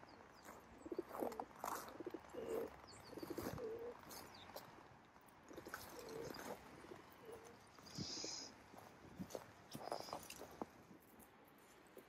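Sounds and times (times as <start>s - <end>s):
small birds chirping: 0.0s - 4.8s, 5.5s - 8.9s, 9.7s - 10.6s
pigeons cooing: 0.8s - 4.1s, 5.5s - 8.5s.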